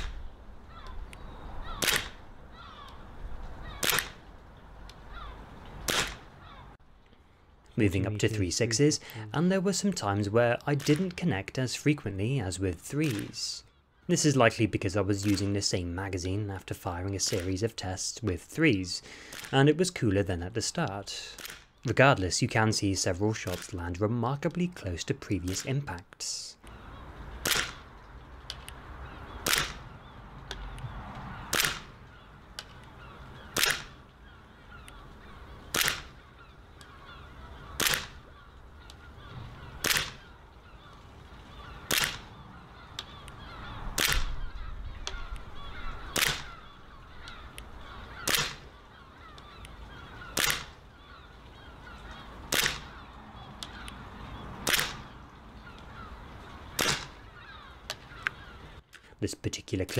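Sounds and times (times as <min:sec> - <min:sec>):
airsoft pistol firing single shots: 0:01.8 - 0:02.2, 0:03.8 - 0:04.2, 0:05.8 - 0:06.3, 0:27.4 - 0:27.8, 0:29.4 - 0:29.8, 0:31.5 - 0:31.9, 0:33.5 - 0:34.0, 0:35.7 - 0:36.2, 0:37.8 - 0:38.2, 0:39.8 - 0:40.3, 0:41.9 - 0:42.3, 0:44.0 - 0:44.4, 0:46.1 - 0:46.5, 0:48.2 - 0:48.7, 0:50.3 - 0:50.8, 0:52.5 - 0:52.9, 0:54.6 - 0:55.1, 0:56.8 - 0:57.2.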